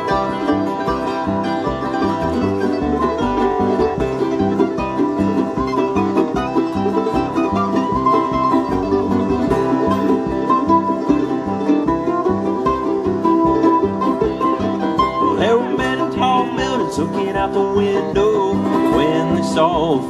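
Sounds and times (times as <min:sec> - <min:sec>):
banjo picking: 0:00.0 - 0:20.0
bluegrass band playing: 0:00.0 - 0:20.0.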